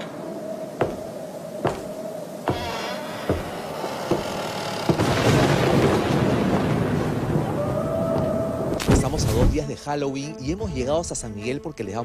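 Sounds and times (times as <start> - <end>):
sharp knocks: 1.6 - 5.3
thunderclap with rumble: 4.9 - 9.6.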